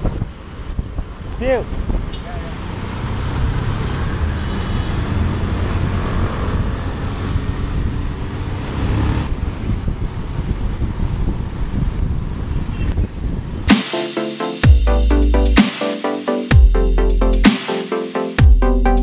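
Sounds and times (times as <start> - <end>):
wind noise on microphone: 0.0 - 2.3, 5.8 - 13.7.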